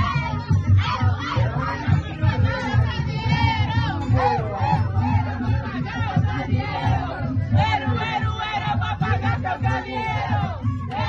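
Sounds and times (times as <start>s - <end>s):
people shouting and singing along: 0.0s - 11.0s.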